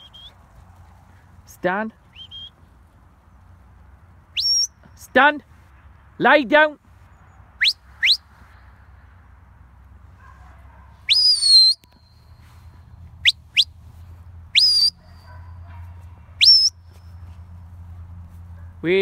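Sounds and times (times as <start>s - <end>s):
short sharp rising whistles: 2.2s - 2.6s, 4.3s - 4.8s, 7.6s - 8.4s, 11.1s - 12.6s, 13.2s - 13.7s, 14.5s - 15.0s, 16.4s - 16.8s.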